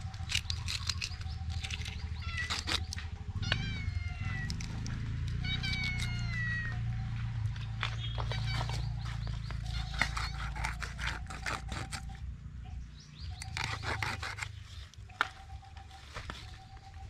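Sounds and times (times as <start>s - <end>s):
cat meowing: 3.4s - 4.7s, 5.4s - 6.9s.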